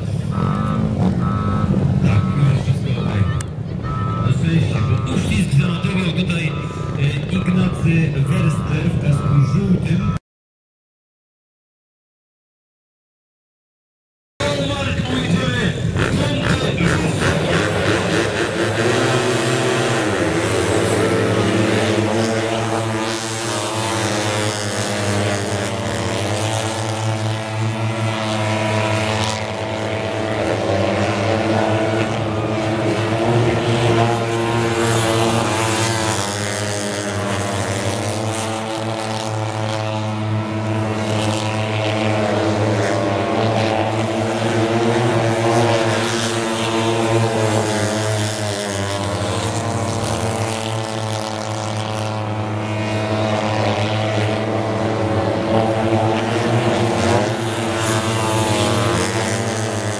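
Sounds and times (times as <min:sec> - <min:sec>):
motorcycle engines revving: 0:00.0 - 0:10.2, 0:14.4 - 0:59.9
steady low drone: 0:00.0 - 0:10.2, 0:14.4 - 0:59.9.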